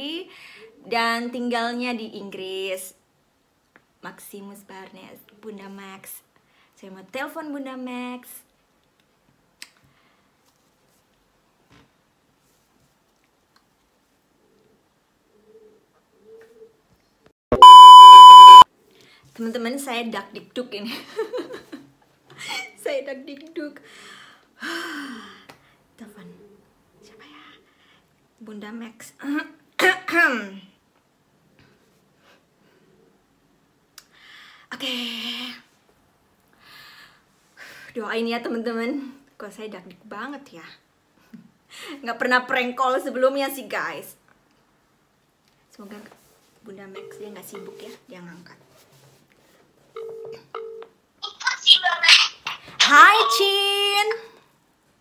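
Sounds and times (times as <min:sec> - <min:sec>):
phone ringback tone: 0:17.6 - 0:18.6
voice through phone speaker: 0:51.2 - 0:53.5.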